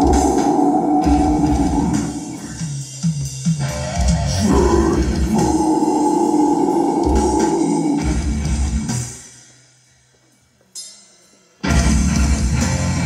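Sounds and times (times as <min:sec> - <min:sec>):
heavy distorted guitars: 0:00.0 - 0:09.4, 0:11.6 - 0:13.0
drums: 0:00.0 - 0:13.0.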